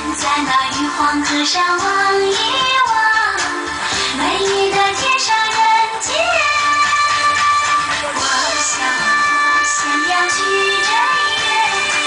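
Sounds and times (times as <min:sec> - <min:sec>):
pop backing track: 0:00.0 - 0:12.0
woman singing pop song: 0:00.0 - 0:12.0.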